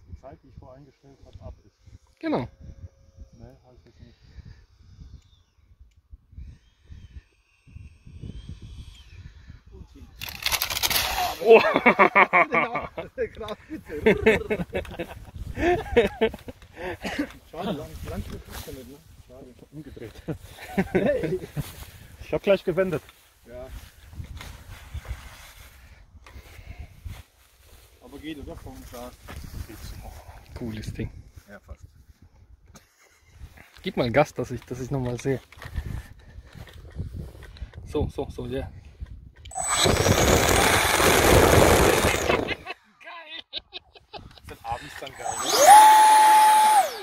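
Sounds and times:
wind on microphone: 1.4 - 11.4, 23.7 - 27.2, 28.6 - 32.5, 35.7 - 42.7
model jet whine: 1.8 - 11.4, 39.5 - 42.6, 45.0 - 47.0.

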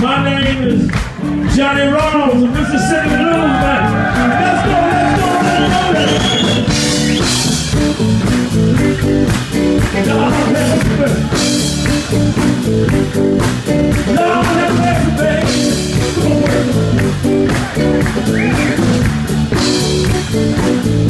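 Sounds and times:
bass guitar: 0.0 - 21.0
drum kit: 0.0 - 21.0
electric guitar: 0.0 - 21.0.

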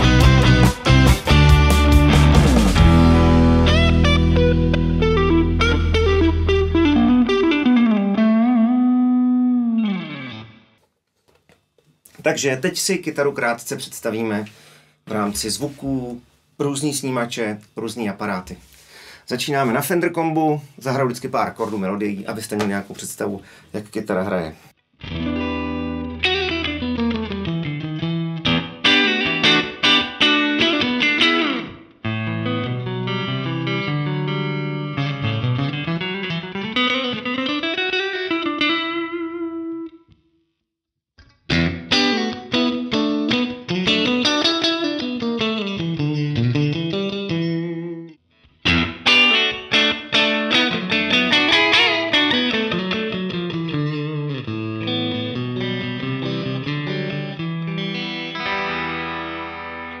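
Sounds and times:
electric guitar chords and melody: 0.0 - 10.8, 25.0 - 40.2, 41.2 - 60.0.

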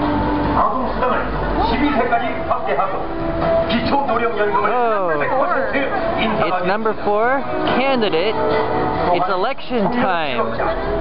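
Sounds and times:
music over loudspeakers: 0.0 - 11.0.

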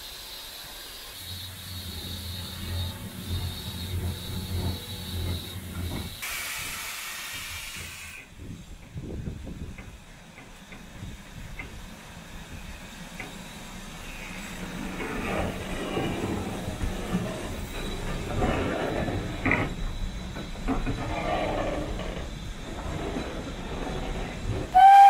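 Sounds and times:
steam locomotive hissing: 0.0 - 25.0.

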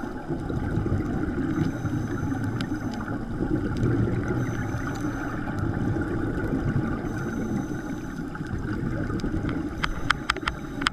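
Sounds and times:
low underwater rumble: 0.0 - 10.9
regulator exhaust bubbles: 0.0 - 10.9
sharp clicks: 9.5 - 10.9.

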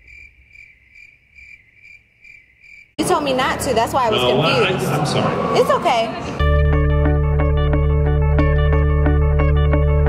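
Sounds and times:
cricket chirping: 0.0 - 3.0.

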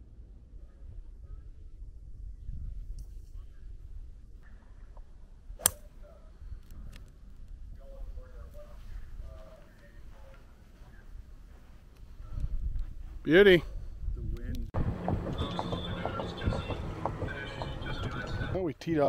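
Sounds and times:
wind rumble on microphone: 0.0 - 5.6, 10.6 - 18.6
golf club striking ball: 5.6 - 5.9.

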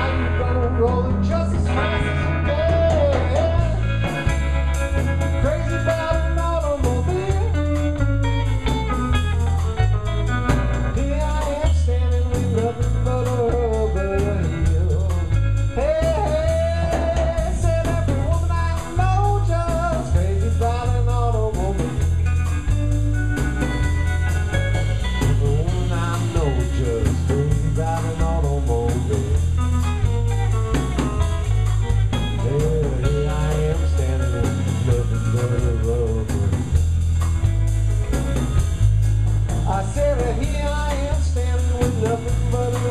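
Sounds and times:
bass guitar: 0.0 - 42.9
drum kit beat: 0.0 - 42.9
electric guitar lead lines: 0.0 - 42.9.

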